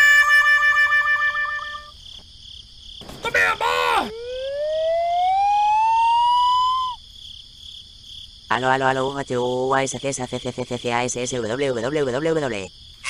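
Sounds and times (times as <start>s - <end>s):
squeaky cartoon cry: 0.0s - 1.9s
crickets chirring: 0.0s - 13.0s
rising whistle tone: 4.0s - 7.0s.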